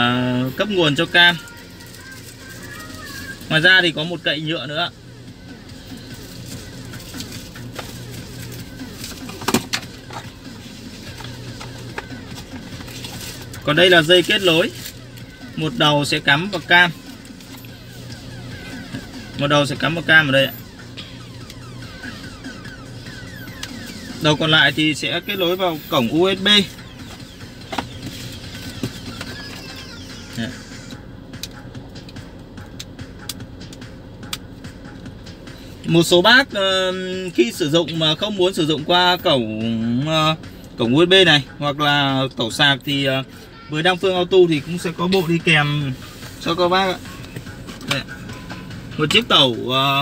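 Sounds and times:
low steady hum: 0.0 - 36.1.

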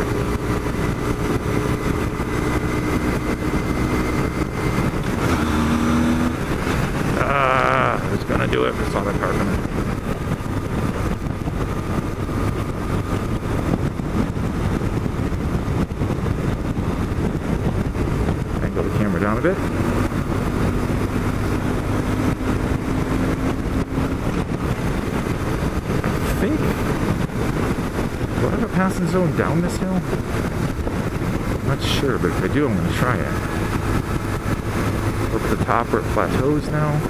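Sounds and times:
motorcycle engine running: 0.0 - 37.0
wind and road noise: 0.0 - 37.0.

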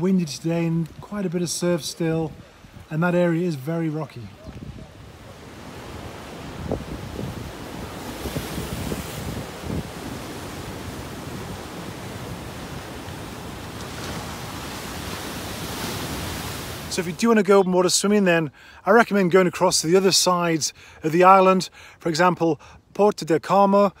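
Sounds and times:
surf washing over rocks: 0.0 - 22.2
wind rumbling on microphone: 4.2 - 16.9.

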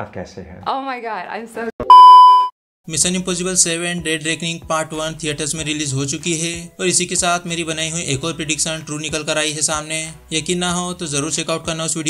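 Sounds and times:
electronic beep: 1.8 - 2.5.

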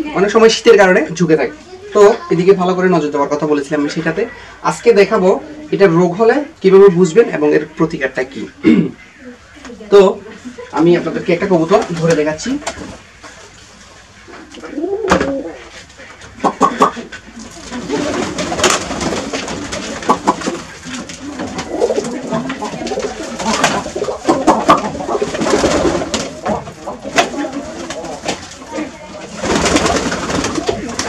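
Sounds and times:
pigeons cooing: 12.6 - 31.0
wings flapping: 16.3 - 31.0.

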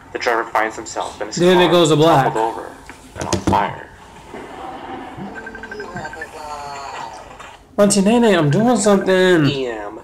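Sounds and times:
noisy rumble: 1.0 - 7.3
short high beeps: 5.2 - 6.4.

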